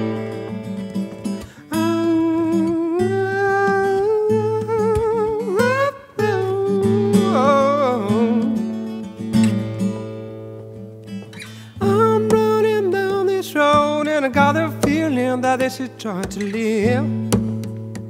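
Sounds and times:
acoustic guitar: 0.0 - 18.0.

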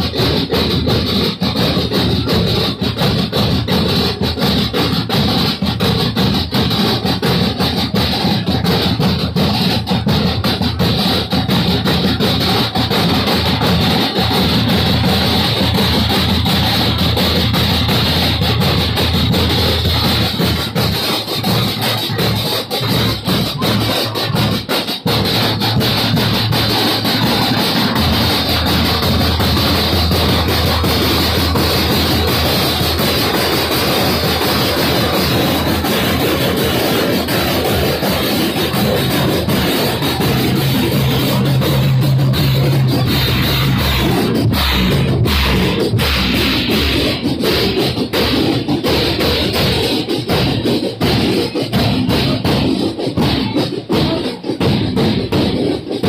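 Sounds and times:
bass drums: 0.0 - 56.0
snare drums: 0.0 - 56.0.

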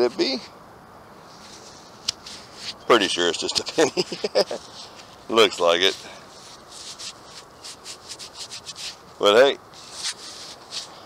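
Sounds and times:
gloved fingers rubbing coin: 3.4 - 9.2, 9.8 - 11.0.

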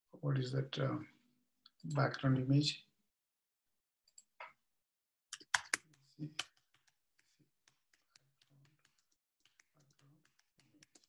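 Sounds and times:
computer keyboard typing: 8.6 - 11.0.

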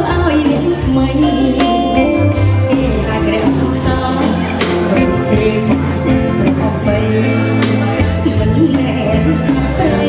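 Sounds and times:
live pop band playing: 0.0 - 10.0
woman singing through microphone: 0.0 - 10.0.

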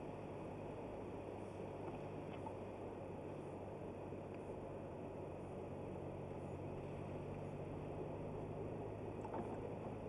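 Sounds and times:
car engine and road noise: 0.0 - 10.0.

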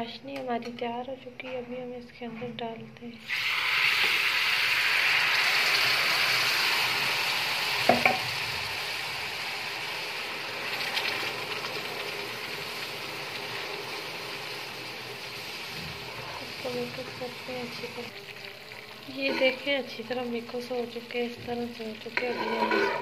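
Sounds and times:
syrup sizzling and bubbling in pan: 3.3 - 23.0.

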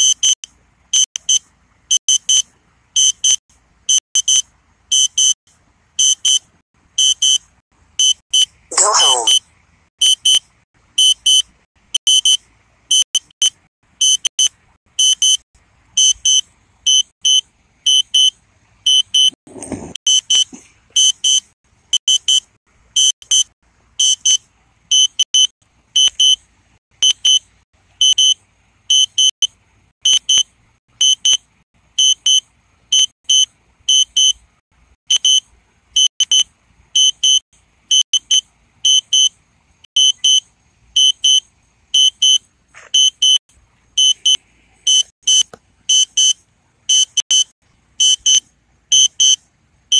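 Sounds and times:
high-pitched warning beeps: 0.0 - 0.4, 1.0 - 2.4, 3.0 - 5.4, 6.0 - 6.4, 7.0 - 7.4, 8.0 - 8.5, 11.0 - 11.4, 12.0 - 15.4, 16.0 - 18.3, 20.1 - 21.4, 22.0 - 26.4, 28.0 - 29.4, 35.1 - 35.4, 37.0 - 39.3, 40.0 - 40.4, 41.0 - 41.4, 42.0 - 42.4, 43.0 - 43.4, 44.0 - 49.4.

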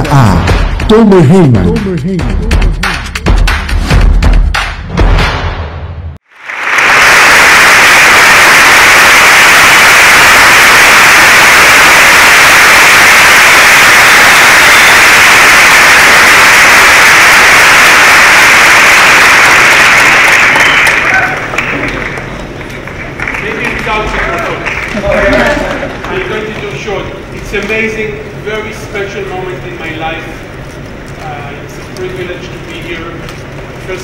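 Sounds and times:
audience applauding: 6.3 - 26.9.

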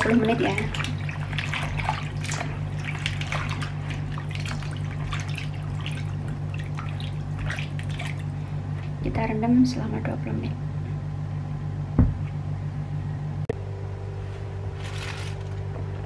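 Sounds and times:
small splashes and drips: 0.0 - 9.0
steady low hum: 0.0 - 16.0.

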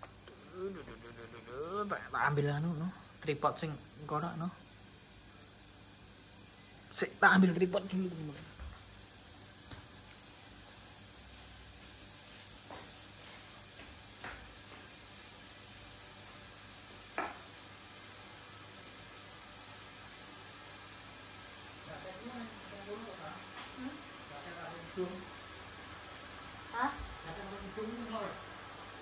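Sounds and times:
steady high-pitched hiss: 0.0 - 29.0.

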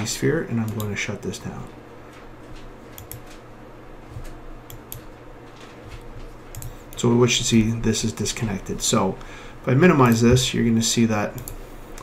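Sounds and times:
faint low hum: 0.0 - 12.0
computer mouse clicks: 2.9 - 3.4, 6.5 - 7.0, 11.3 - 12.0.

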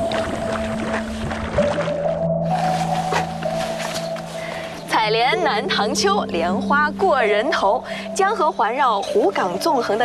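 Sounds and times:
water splashing: 0.0 - 8.0
background music sustained notes: 0.0 - 10.0.

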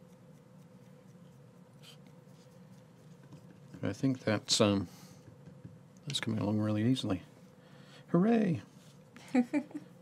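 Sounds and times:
paintbrush scratching: 0.0 - 4.6
faint room hum: 0.0 - 10.0.

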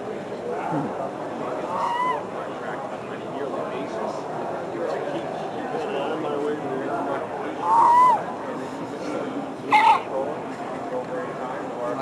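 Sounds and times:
robotic seal pup cry: 9.7 - 10.1.

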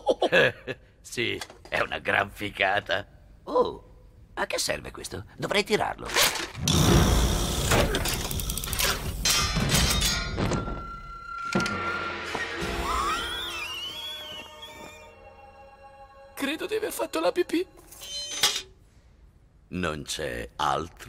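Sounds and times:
metallic clanks and thuds: 7.6 - 10.9
film music: 9.5 - 18.2.

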